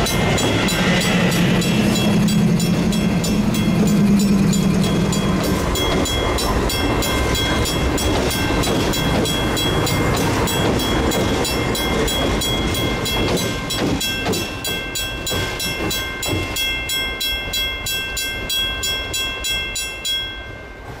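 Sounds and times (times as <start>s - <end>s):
diesel locomotive rumble: 0.0s - 19.3s
crossing bell ringing: 0.0s - 21.0s.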